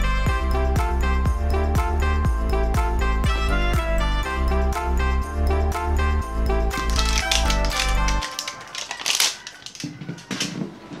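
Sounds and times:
upbeat background music: 0:00.0 - 0:08.8
paper wrapping crinkling: 0:06.7 - 0:11.0.

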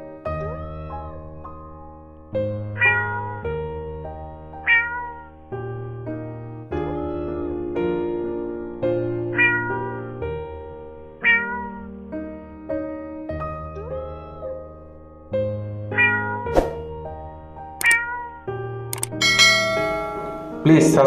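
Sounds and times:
piano-like chords: 0:00.0 - 0:21.0
cat meowing: 0:02.8 - 0:03.5, 0:04.6 - 0:05.4, 0:09.3 - 0:10.2, 0:11.2 - 0:11.9, 0:15.9 - 0:16.5, 0:17.8 - 0:18.5.

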